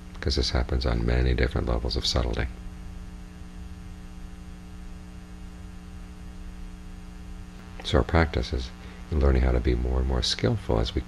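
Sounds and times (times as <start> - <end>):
electrical mains hum: 0.0 - 11.0
man's voice: 0.2 - 2.5, 7.8 - 11.0.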